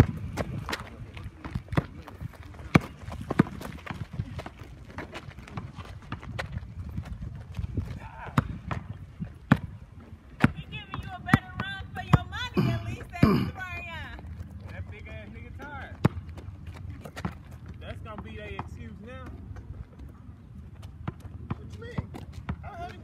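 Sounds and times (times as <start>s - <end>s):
footsteps: 0.0s - 13.0s
basketball bouncing on asphalt: 0.0s - 23.0s.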